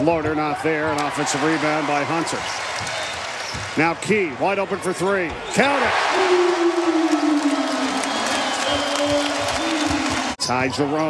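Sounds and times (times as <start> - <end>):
crowd cheering and applauding: 1.0 - 3.6, 5.7 - 10.4.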